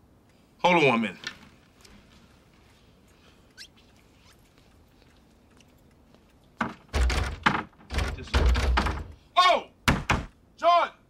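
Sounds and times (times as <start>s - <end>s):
heavy thuds against wooden door: 6.6s - 9.2s, 9.9s - 10.3s
sharp knock on door: 6.6s - 9.2s, 9.9s - 10.3s.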